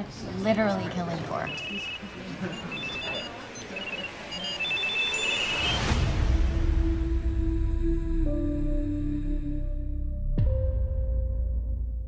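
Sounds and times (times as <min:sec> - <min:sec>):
phone notification pings: 0:01.5 - 0:05.9.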